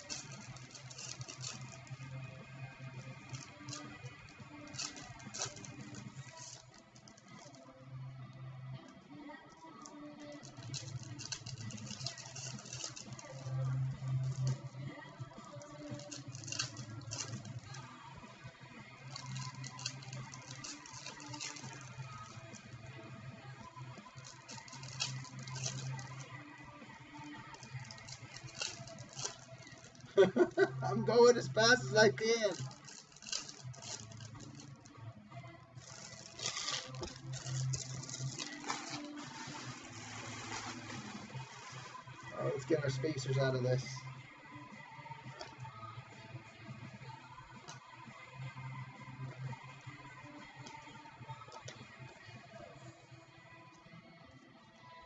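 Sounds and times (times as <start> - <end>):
foil wrappers crinkling and tearing: 0.0 - 2.2, 3.1 - 7.7, 9.7 - 17.8, 19.1 - 22.7, 24.1 - 26.4, 27.4 - 34.9, 35.8 - 42.5
quiet background music: 0.0 - 55.0.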